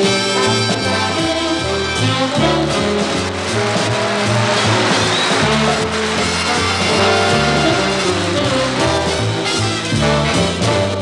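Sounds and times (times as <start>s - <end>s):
big band swing jazz with brass: 0.0s - 11.0s.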